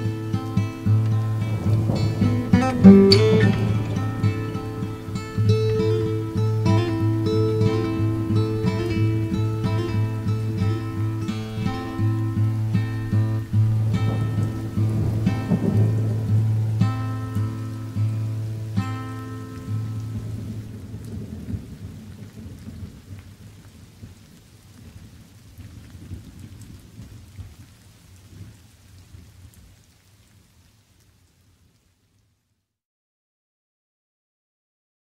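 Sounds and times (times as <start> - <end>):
acoustic guitar: 0.0 - 20.9
rain: 0.0 - 32.8
thunder: 1.3 - 10.2, 11.3 - 17.6, 20.1 - 24.2.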